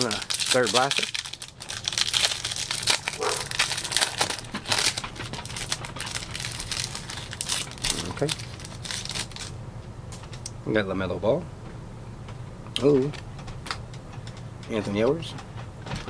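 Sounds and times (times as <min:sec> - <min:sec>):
foil wrapper crinkling: 0:00.0 - 0:09.6.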